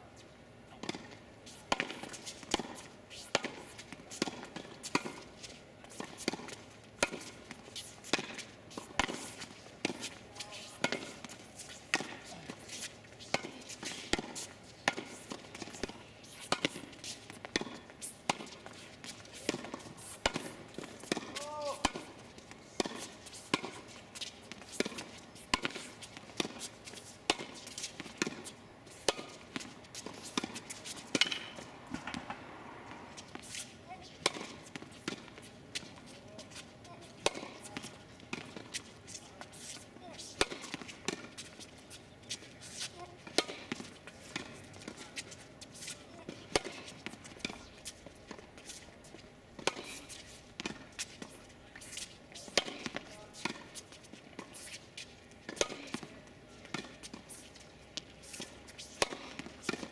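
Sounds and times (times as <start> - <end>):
tennis balls struck by rackets: 0.7 - 59.9
balls bouncing on hard court: 5.9 - 22.1.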